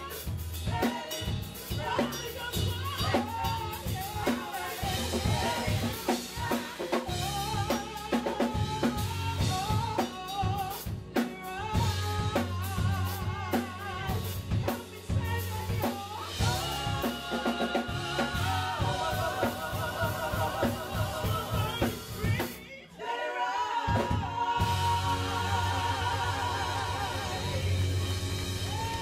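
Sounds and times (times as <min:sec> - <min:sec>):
drum kit beat: 0:00.0 - 0:22.7, 0:23.8 - 0:29.0
bass: 0:00.0 - 0:29.0
women singing with vibrato: 0:00.0 - 0:29.0.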